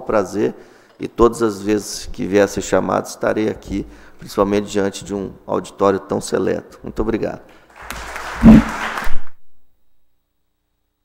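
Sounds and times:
audience applause: 0:07.7 - 0:09.3
low bump on microphone: 0:08.4 - 0:08.9.

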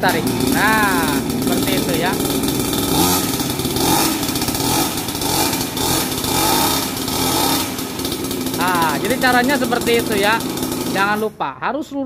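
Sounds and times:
small two-stroke engine running: 0:00.0 - 0:11.5.

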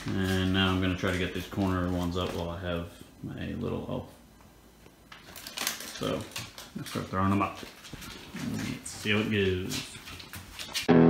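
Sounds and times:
crinkling rustling: 0:00.0 - 0:04.1, 0:04.9 - 0:10.9.

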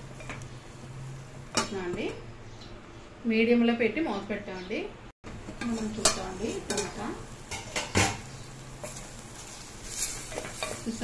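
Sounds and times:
masala frying with faint sizzle: 0:00.0 - 0:11.0.

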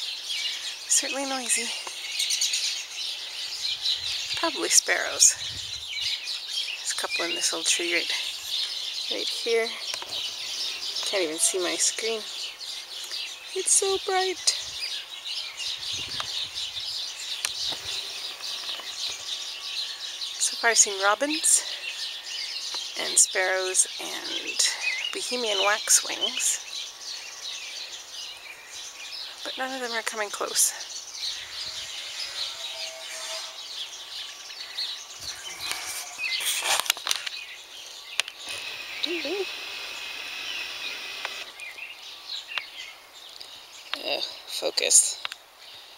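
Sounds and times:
songbirds chirping: 0:00.0 - 0:45.9
sparrows chattering: 0:00.0 - 0:45.9
sharp clicks: 0:38.1 - 0:41.6.

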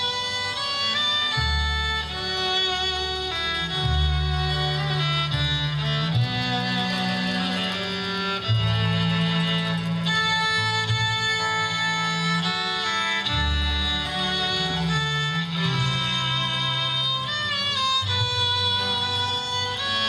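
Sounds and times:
bowed cello: 0:00.0 - 0:20.0
fiddle melody: 0:00.0 - 0:20.0
mandolin: 0:00.0 - 0:20.0
upright bass: 0:00.0 - 0:20.0.

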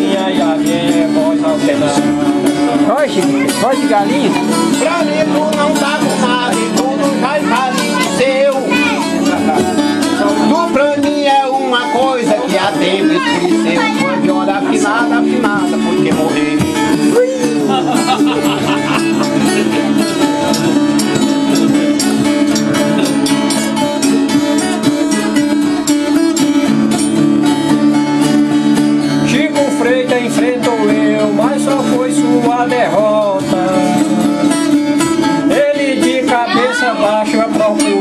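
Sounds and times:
person singing: 0:00.0 - 0:26.6, 0:29.1 - 0:38.0
viola and guitar strummed together: 0:00.0 - 0:38.0.

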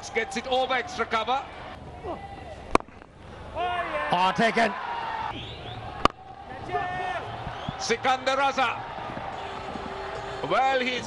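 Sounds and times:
stadium crowd noise: 0:00.0 - 0:11.0
cricket bat striking ball: 0:02.7 - 0:03.2, 0:05.3 - 0:06.4, 0:08.9 - 0:10.0.

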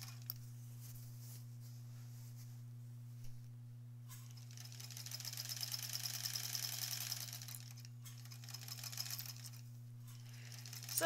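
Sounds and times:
sewing machine stitching: 0:04.3 - 0:09.6, 0:10.4 - 0:11.0.

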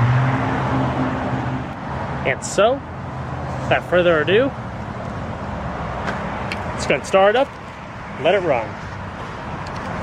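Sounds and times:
traffic-like rumble and hiss: 0:00.0 - 0:10.0.

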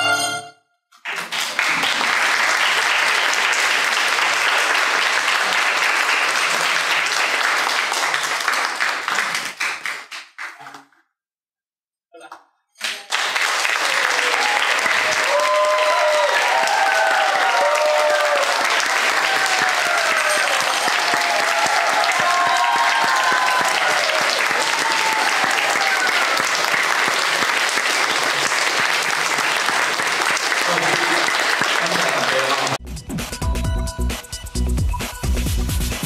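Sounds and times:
audience applauding: 0:01.0 - 0:10.8, 0:12.8 - 0:32.8.

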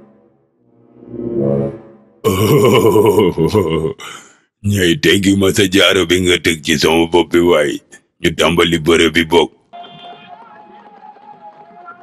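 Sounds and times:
deep cartoon grunt: 0:02.2 - 0:04.4.

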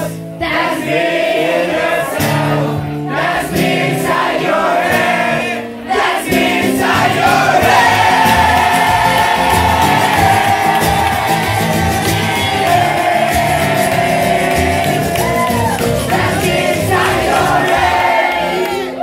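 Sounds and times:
crowd singing along: 0:00.0 - 0:19.0
strummed acoustic guitar: 0:01.6 - 0:19.0.

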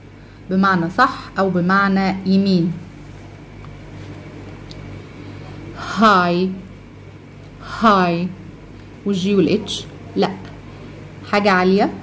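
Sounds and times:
low room tone hum: 0:00.0 - 0:12.0
person speaking: 0:07.6 - 0:12.0.

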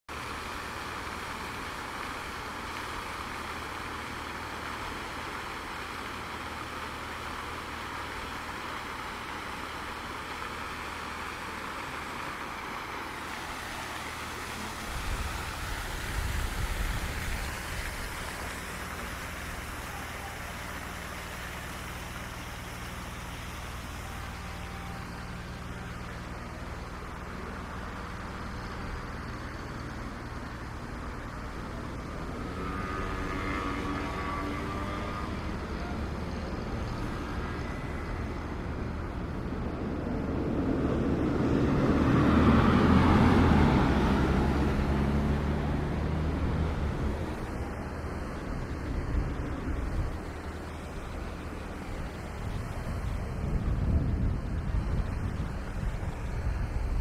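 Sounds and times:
background traffic: 0:00.1 - 0:57.0
splashing fountain water: 0:00.1 - 0:57.0.

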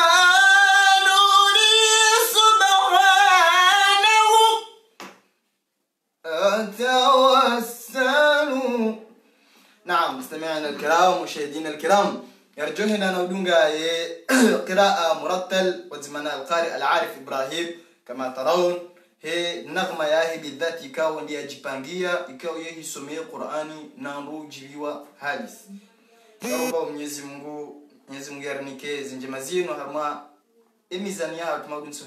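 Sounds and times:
man reciting melodically: 0:00.0 - 0:04.7, 0:06.2 - 0:09.1, 0:09.8 - 0:25.8, 0:26.4 - 0:30.3
man singing melodic phrases: 0:00.0 - 0:04.7, 0:06.2 - 0:09.1, 0:26.4 - 0:26.8
man clearing throat: 0:14.3 - 0:14.7, 0:26.4 - 0:26.7.

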